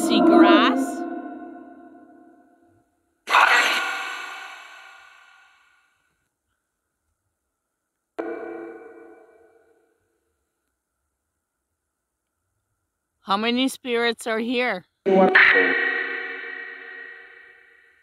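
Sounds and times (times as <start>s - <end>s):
echoing ping sounds: 8.2s - 9.9s.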